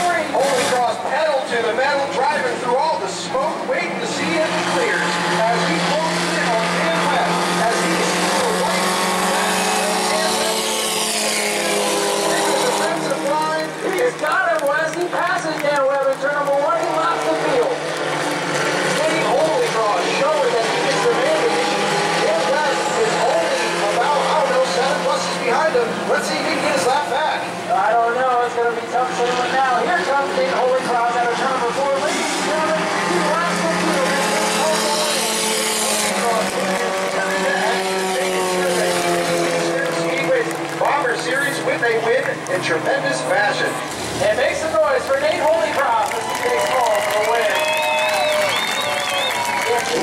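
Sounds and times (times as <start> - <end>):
public-address announcer voice: 0.0 - 10.8, 11.7 - 17.9, 18.9 - 50.0
stock car engines droning: 0.0 - 50.0.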